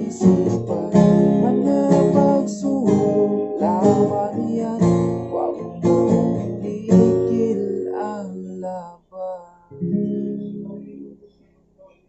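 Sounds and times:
man singing: 0:00.0 - 0:09.8
acoustic guitar: 0:00.0 - 0:12.0.

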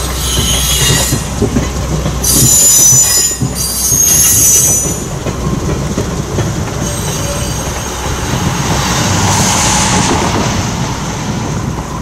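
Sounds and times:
train wheels squealing on rails: 0:00.0 - 0:05.8, 0:06.4 - 0:12.0
train rumbling and clattering: 0:00.0 - 0:12.0.

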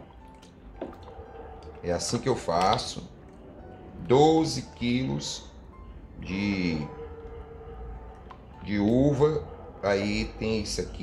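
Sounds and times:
wet squelching of stirred grapes: 0:00.0 - 0:05.0.

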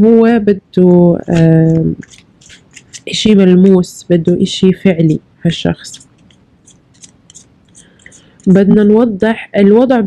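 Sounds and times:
woman speaking: 0:00.0 - 0:06.0, 0:08.0 - 0:10.0
faint scratchy rustles: 0:01.2 - 0:03.3.

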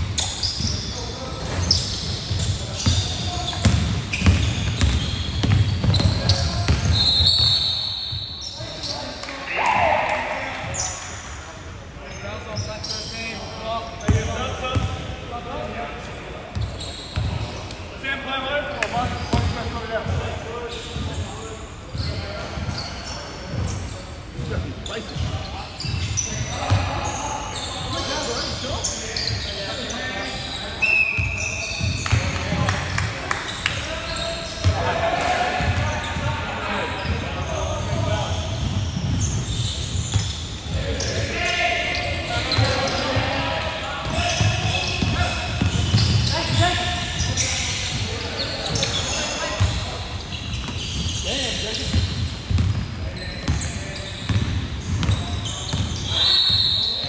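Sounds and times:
basketball bouncing on hardwood: 0:03.6 - 0:06.9.

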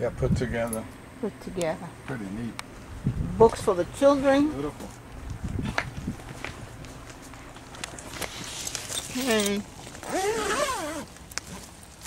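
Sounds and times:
zipper being pulled: 0:08.2 - 0:11.8.

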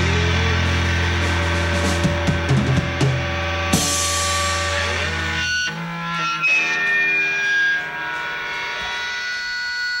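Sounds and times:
guitar amplifier feedback drone: 0:00.0 - 0:10.0.

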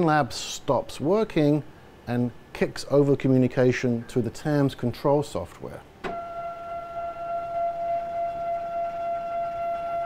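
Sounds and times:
motorised stage drive whine: 0:06.0 - 0:10.0.

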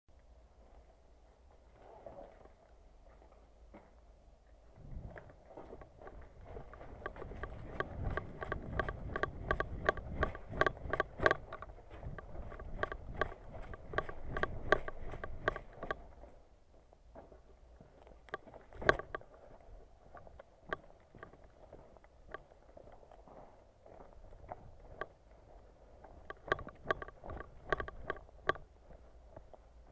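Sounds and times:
camera rattling and rumbling: 0:04.8 - 0:16.3, 0:18.3 - 0:21.5, 0:24.3 - 0:29.6.

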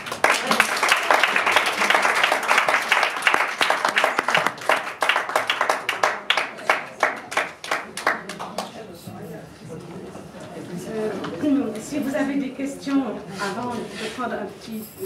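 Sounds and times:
audience applauding: 0:00.0 - 0:08.8.

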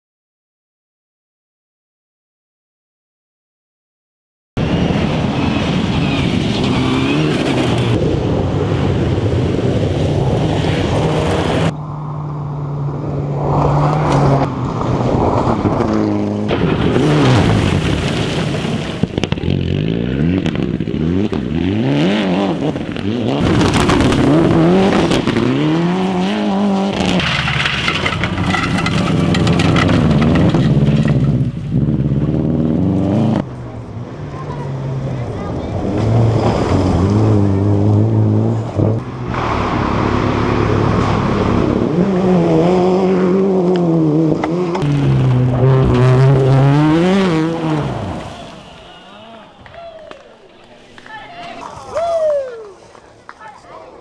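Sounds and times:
rally car engines revving: 0:04.6 - 0:49.8
cars accelerating on gravel: 0:04.6 - 0:53.7.

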